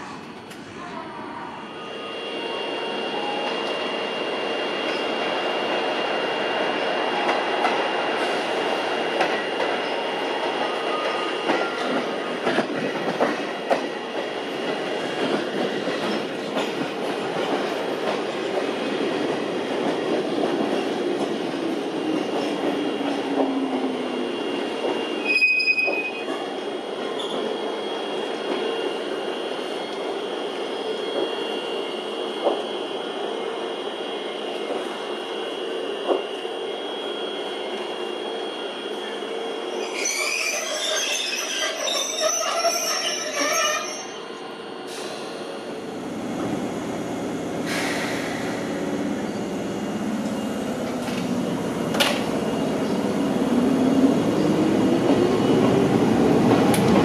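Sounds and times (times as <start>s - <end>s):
train rumbling on rails: 0.0s - 57.0s
wheel squeal: 39.8s - 44.2s.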